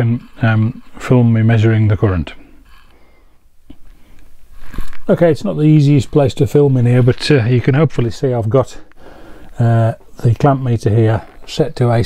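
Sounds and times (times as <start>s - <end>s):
faint low hum: 0.0s - 12.0s
man's voice: 5.1s - 8.8s, 9.6s - 12.0s.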